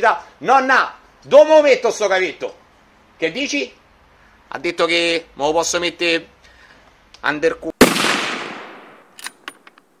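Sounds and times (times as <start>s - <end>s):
gunshot with long echo: 7.8s - 9.1s.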